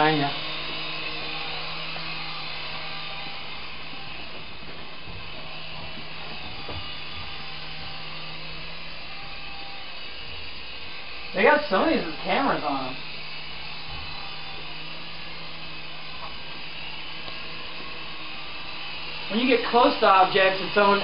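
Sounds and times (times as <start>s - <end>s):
toy helicopter rotors whirring: 0.0s - 21.0s.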